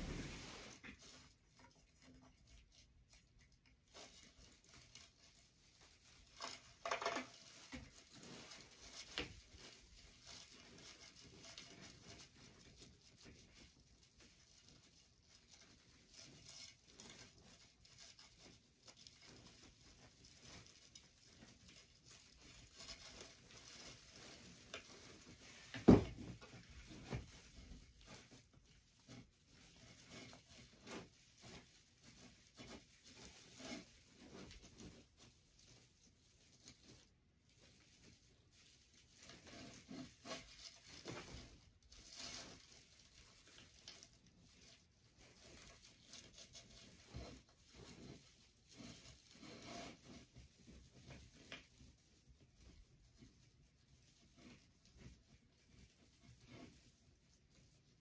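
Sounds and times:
faint rustling of mesh: 0:00.0 - 0:58.0.

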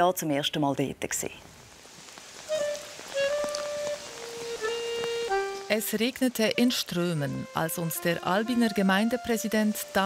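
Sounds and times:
steady rain hiss: 0:01.0 - 0:10.0
slow instrumental melody: 0:02.5 - 0:10.0.

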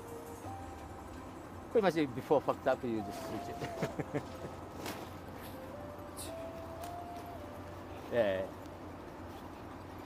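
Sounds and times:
low city hum: 0:00.0 - 0:10.0.

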